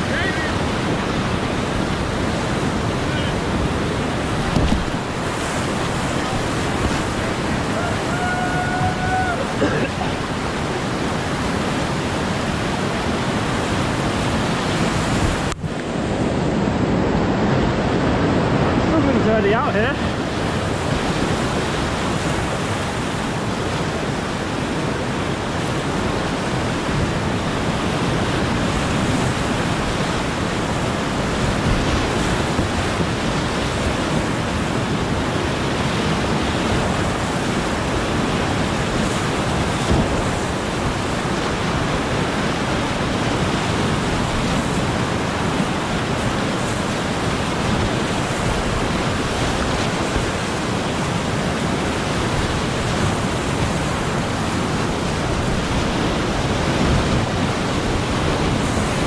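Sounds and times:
whitewater rapids roaring: 0.0s - 59.0s.

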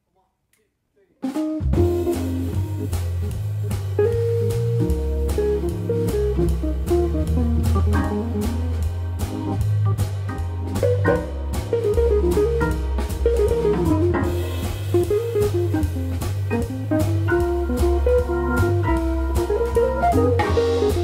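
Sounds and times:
drum kit cymbals: 1.2s - 21.0s
jazz organ quartet playing: 1.2s - 21.0s
organ bass line: 1.4s - 21.0s
electric guitar melody: 1.6s - 21.0s.

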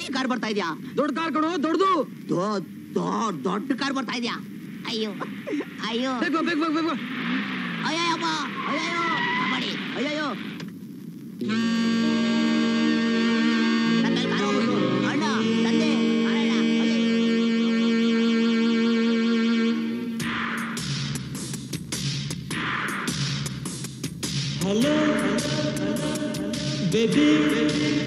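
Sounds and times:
car engine approaching: 6.2s - 9.4s
sustained orchestral chord: 11.5s - 20.2s
low sliding voice: 13.9s - 17.3s.

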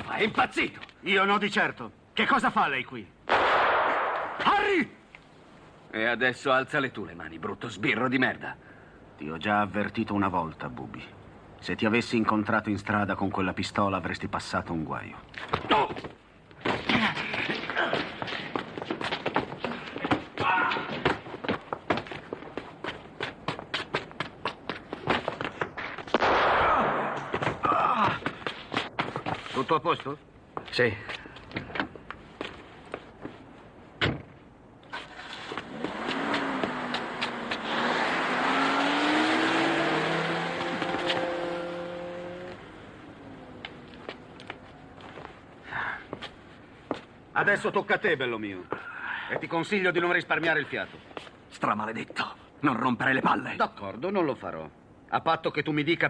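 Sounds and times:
quick footsteps: 15.4s - 26.2s, 34.9s - 37.7s, 40.5s - 41.4s, 43.6s - 47.2s
burst of noise: 26.1s - 27.9s
car engine accelerating: 35.6s - 44.6s.

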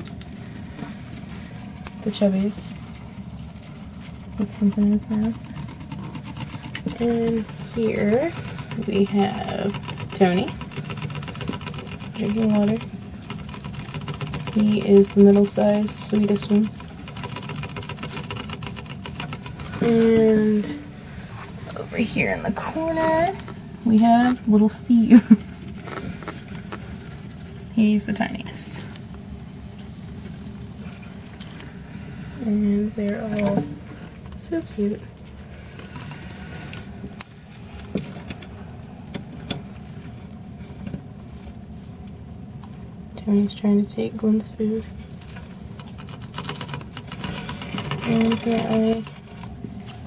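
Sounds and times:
faint clicks and rustles: 0.0s - 31.9s, 32.9s - 43.3s
low background hum: 0.0s - 50.0s
mouse licking water bottle tube: 4.4s - 20.0s.

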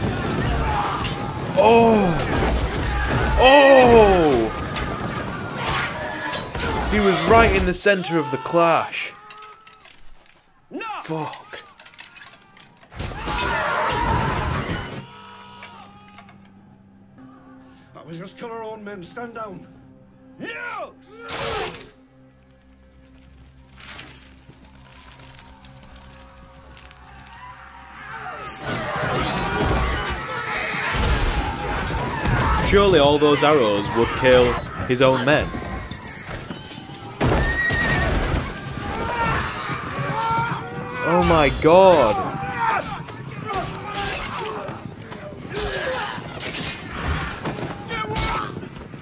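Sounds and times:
battle noise: 0.0s - 9.9s
music: 0.0s - 49.0s.

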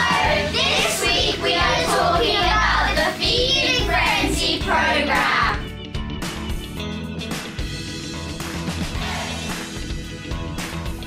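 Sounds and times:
children singing together: 0.0s - 5.6s, 9.0s - 9.5s
background music with bass line: 0.0s - 11.0s.

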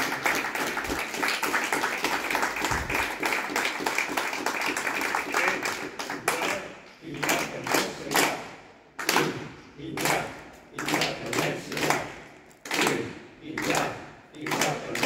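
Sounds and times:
crowd applauding: 0.0s - 8.2s
voices among clapping: 0.0s - 15.0s.

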